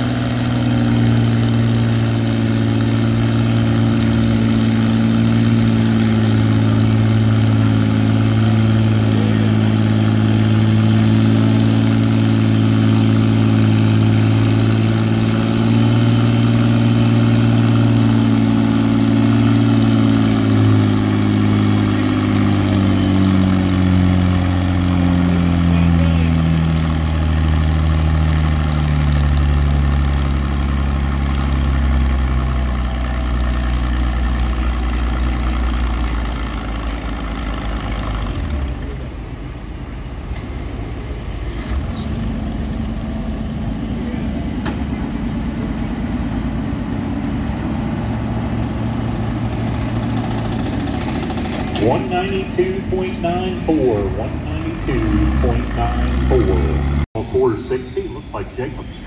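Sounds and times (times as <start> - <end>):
tractor engine under load: 0.0 - 58.0.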